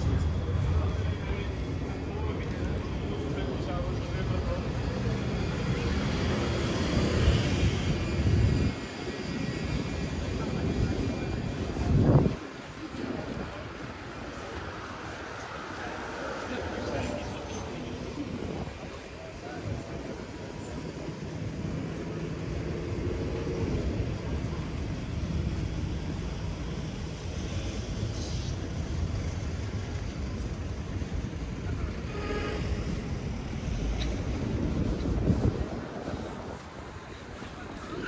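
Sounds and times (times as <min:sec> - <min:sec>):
low street rumble: 0:00.0 - 0:38.0
passers-by voices: 0:00.0 - 0:38.0.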